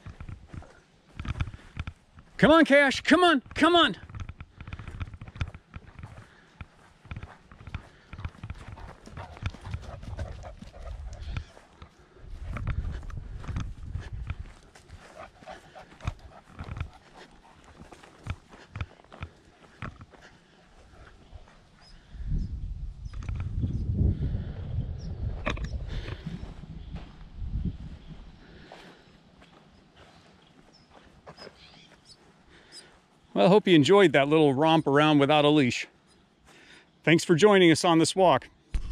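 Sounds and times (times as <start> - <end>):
footsteps on dry grass and dirt: 0.0 - 36.8
low rumbling microphone noise: 3.4 - 18.9, 20.8 - 29.1.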